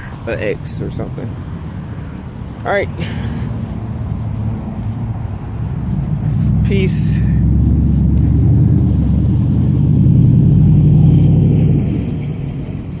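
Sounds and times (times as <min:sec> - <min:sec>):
vehicle passing by: 0:00.7 - 0:13.0.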